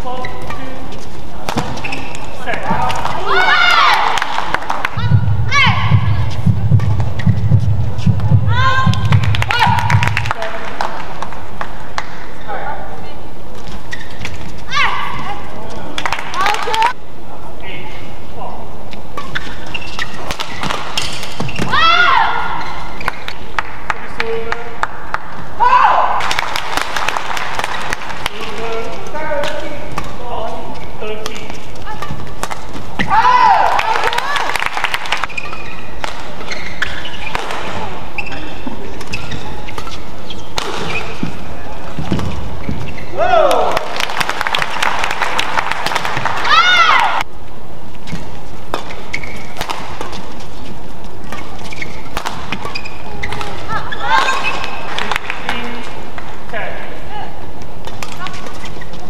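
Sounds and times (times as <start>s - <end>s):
shoes squeaking on court: 0.0s - 3.5s, 6.1s - 8.3s, 13.5s - 16.0s, 18.9s - 23.5s, 28.7s - 33.1s, 35.0s - 43.2s, 47.9s - 56.2s, 57.6s - 59.0s
arena crowd noise: 1.4s - 6.5s, 32.9s - 36.6s, 52.7s - 58.4s
spectators clapping: 4.0s - 5.0s, 9.0s - 12.2s, 16.0s - 17.0s, 23.0s - 25.3s, 26.2s - 28.5s, 33.6s - 35.4s, 43.6s - 46.5s, 54.9s - 55.5s
racket striking shuttlecock: 19.2s - 21.7s, 31.2s - 33.1s, 39.0s - 41.4s, 48.1s - 50.4s, 51.3s - 55.6s.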